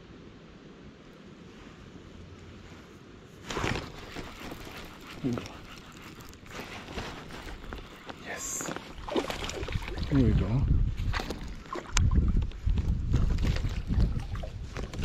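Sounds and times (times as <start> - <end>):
wind rumbling on microphone: 0.0 - 15.0
handling rustling and clattering: 3.3 - 9.5.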